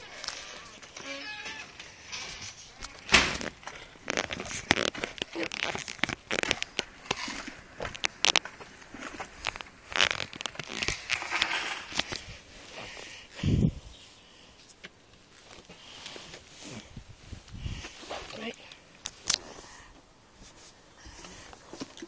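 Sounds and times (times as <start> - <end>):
rustling and scraping: 0.0 - 22.0.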